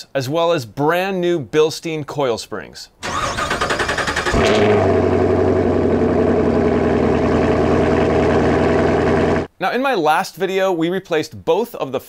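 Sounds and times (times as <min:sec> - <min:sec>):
engine starter cranking: 0:03.0 - 0:05.2
engine idling: 0:03.0 - 0:09.5.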